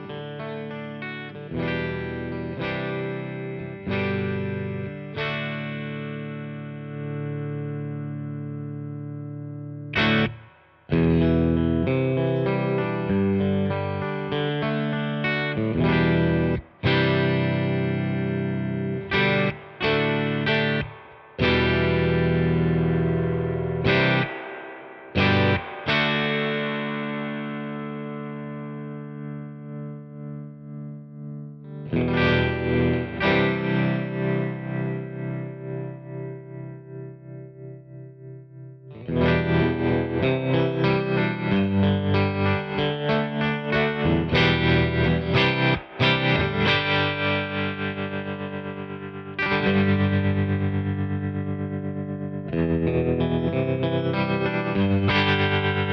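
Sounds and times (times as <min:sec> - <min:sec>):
electric guitar chords: 0:00.0 - 0:55.9.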